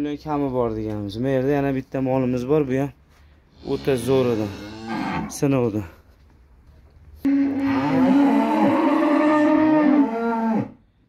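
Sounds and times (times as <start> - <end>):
cow mooing: 3.6 - 5.4, 7.3 - 10.8.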